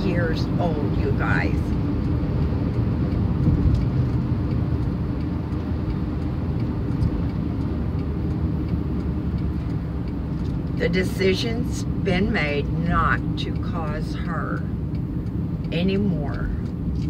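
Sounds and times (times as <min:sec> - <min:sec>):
engine and tyre rumble: 0:00.0 - 0:17.0.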